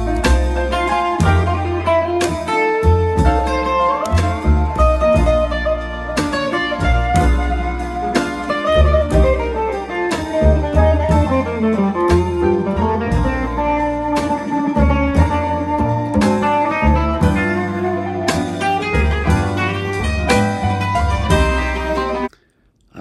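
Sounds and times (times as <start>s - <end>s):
drums: 0.0s - 17.6s, 18.3s - 21.7s
electric guitar melody: 0.0s - 22.3s
upright bass: 0.0s - 22.3s.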